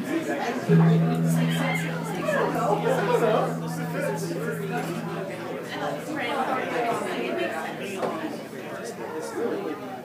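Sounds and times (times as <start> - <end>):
indistinct crowd chatter: 0.0 - 10.0
low amplified instrument note: 0.7 - 6.9.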